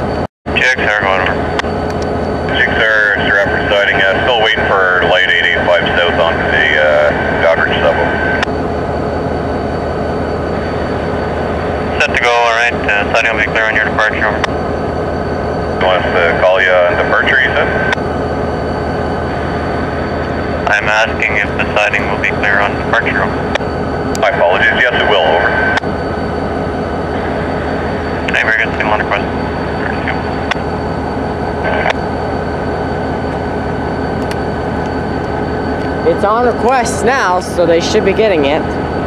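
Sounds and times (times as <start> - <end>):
diesel locomotives idling: 0.5 - 39.0.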